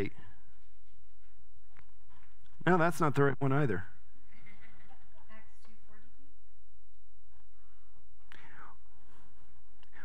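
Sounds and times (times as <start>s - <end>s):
steady low hum: 0.0s - 10.0s
man whispering faintly: 8.3s - 10.0s.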